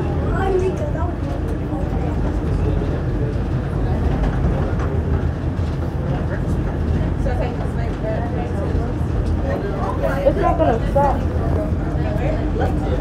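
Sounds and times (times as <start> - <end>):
tram rumbling at speed: 0.0 - 13.0.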